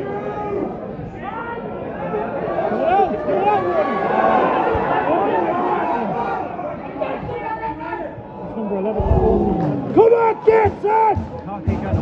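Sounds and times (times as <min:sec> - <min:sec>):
football crowd shouting: 0:00.0 - 0:11.9.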